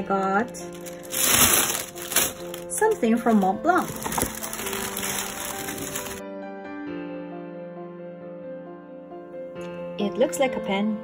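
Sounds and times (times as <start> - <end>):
paper and tissue rustling: 0.0 - 6.2
quiet background music: 0.0 - 11.0.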